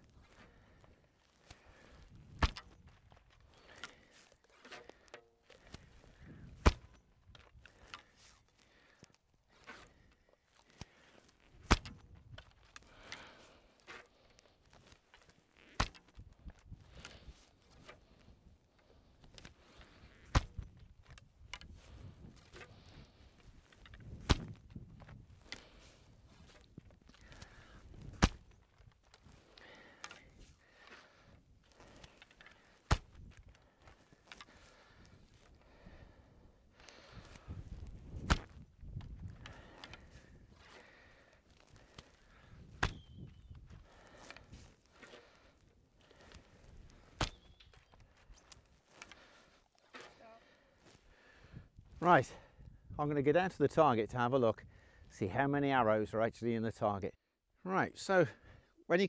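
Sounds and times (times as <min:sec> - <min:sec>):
arrows rustling: 0:00.2 - 0:51.1
bowstring cracks: 0:36.7 - 0:50.2.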